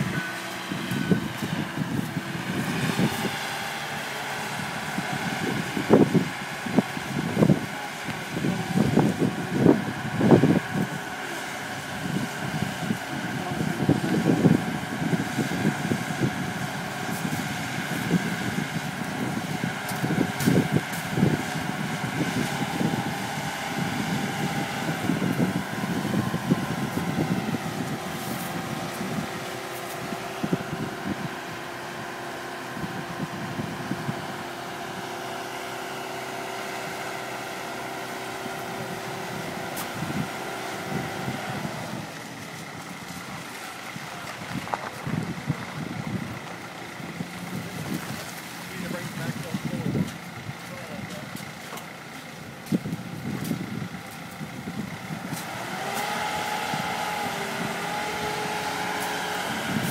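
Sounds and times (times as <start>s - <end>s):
wind buffeting microphone: 0.0s - 35.1s, 38.4s - 59.9s.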